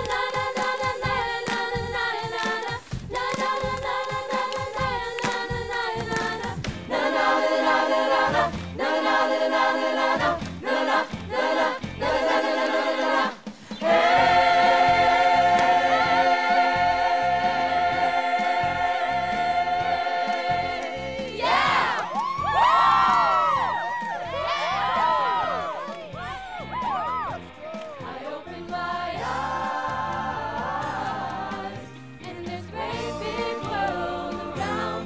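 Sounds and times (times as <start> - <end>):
choir singing chords: 0.0 - 22.2, 27.9 - 35.0
whoops and cheers: 21.4 - 28.0.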